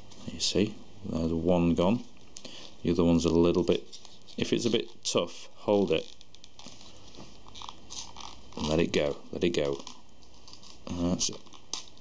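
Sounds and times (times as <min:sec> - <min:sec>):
thin card crackling and rustling: 0:03.2 - 0:05.2, 0:05.8 - 0:12.0.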